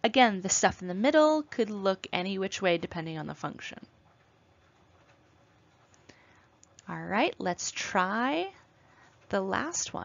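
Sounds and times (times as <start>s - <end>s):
woman speaking: 0.0s - 3.9s, 6.8s - 8.6s, 9.3s - 10.0s.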